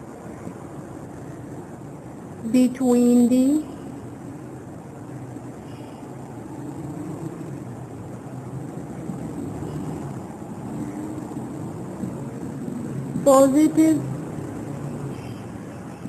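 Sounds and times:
low background rumble: 0:00.0 - 0:16.0.

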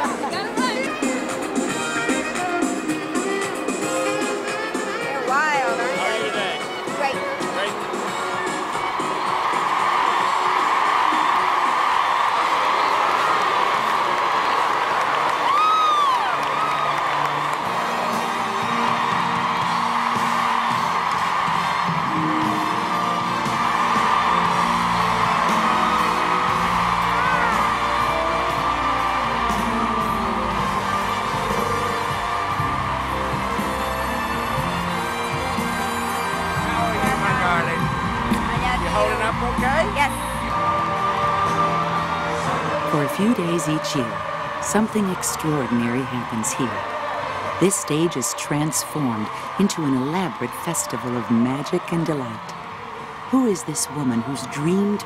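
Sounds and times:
crowd cheering and applauding: 0:00.0 - 0:55.0
music: 0:00.0 - 0:55.0.

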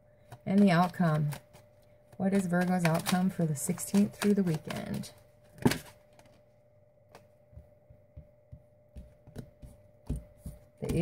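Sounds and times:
soft clicks and thumps of cards: 0:07.1 - 0:11.0.

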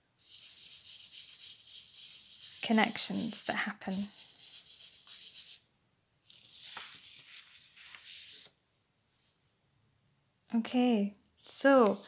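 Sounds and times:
paper rustling and rubbing: 0:00.2 - 0:05.6, 0:06.2 - 0:08.6, 0:11.4 - 0:12.0.

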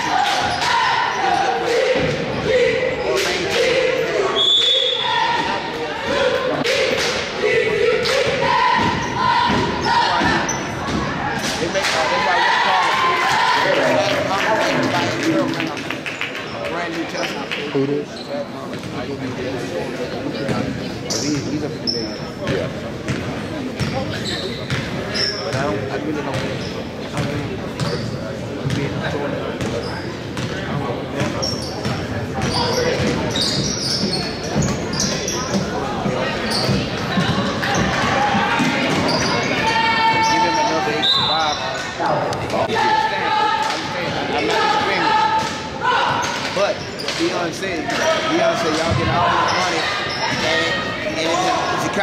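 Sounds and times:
chatter and voices calling out: 0:00.0 - 0:52.0
sneaker squeaks: 0:04.0 - 0:05.6, 0:08.6 - 0:11.1, 0:18.1 - 0:19.1, 0:20.5 - 0:42.4, 0:45.8 - 0:51.9.

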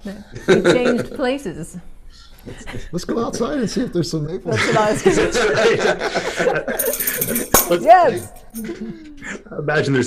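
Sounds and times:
people laughing: 0:00.3 - 0:01.2, 0:04.5 - 0:07.6
high rattling jingle: 0:06.8 - 0:08.6.

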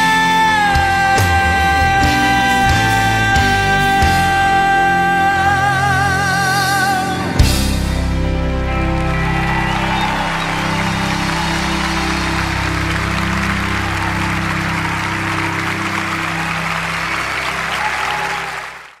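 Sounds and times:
audience applauding: 0:08.1 - 0:19.0.

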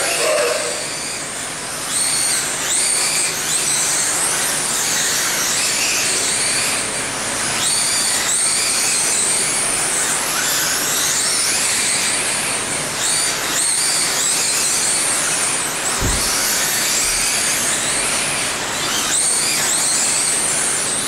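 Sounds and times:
electric motors whining: 0:00.0 - 0:21.0
low thump: 0:16.0 - 0:16.5.

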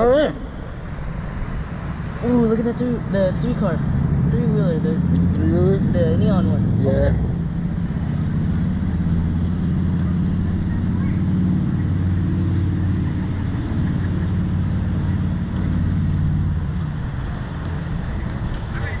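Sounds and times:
low hum and rumble: 0:00.0 - 0:19.0.

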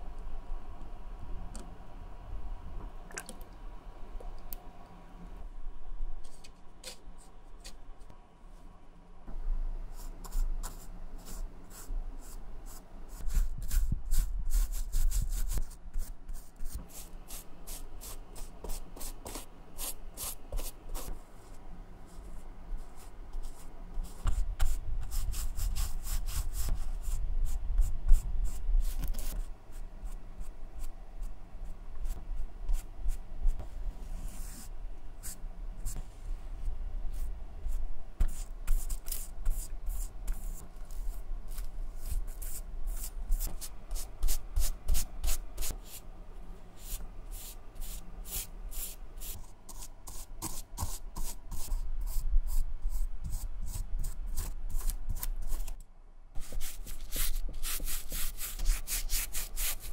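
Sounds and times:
brush stroking shoe upper: 0:56.4 - 0:59.9
paintbrush scrubbing fabric: 0:56.4 - 0:59.9.

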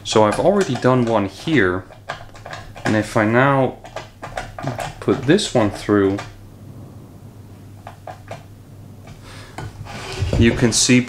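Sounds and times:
steady low hum: 0:05.0 - 0:11.0.

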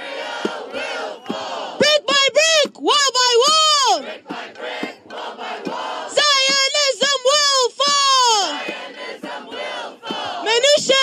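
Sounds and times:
crowd shouting back: 0:00.0 - 0:11.0
person shouting through microphone: 0:01.8 - 0:04.0.

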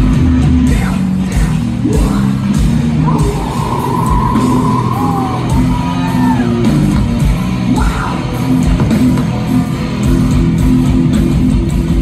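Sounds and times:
punk band playing live: 0:00.0 - 0:12.0
yelled vocals: 0:00.6 - 0:09.1.

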